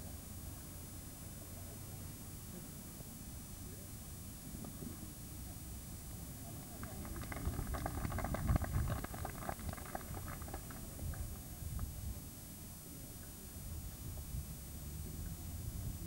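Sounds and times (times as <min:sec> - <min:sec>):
steady low rumble: 0:06.3 - 0:12.2.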